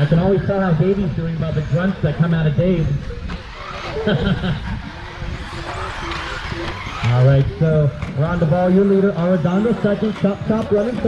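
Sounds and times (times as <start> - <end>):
rc buggies whining: 0.0 - 11.0
man laughing: 3.8 - 5.1.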